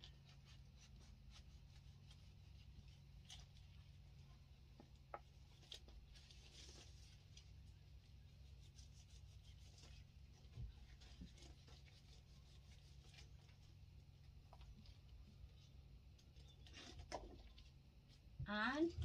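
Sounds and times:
low steady hum: 0.0s - 19.0s.

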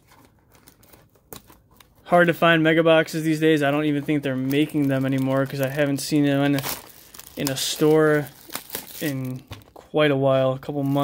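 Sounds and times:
plastic shrink-wrap crinkling: 2.9s - 9.8s, 10.6s - 11.0s.

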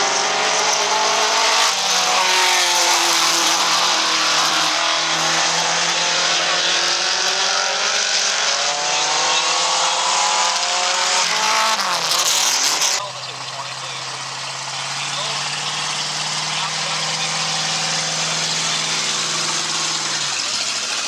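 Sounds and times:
race car engines passing: 0.0s - 21.0s.

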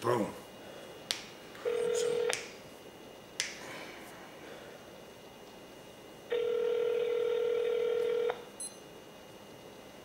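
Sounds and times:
telephone call tone: 1.6s - 2.3s, 6.3s - 8.4s.

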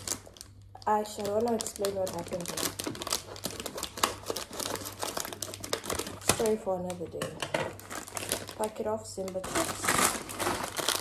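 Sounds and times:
plastic packets crackling: 0.0s - 11.0s
scissors cutting plastic: 0.0s - 11.0s.

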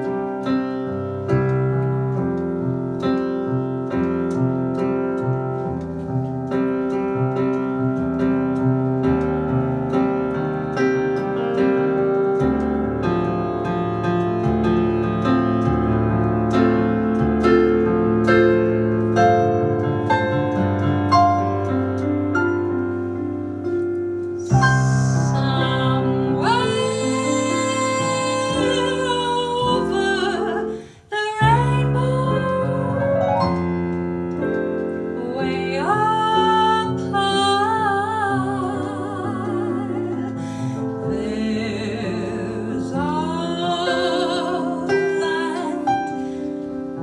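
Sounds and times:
slow chordal piano: 0.0s - 47.0s
woman singing a ballad: 24.4s - 33.6s, 35.1s - 46.8s.

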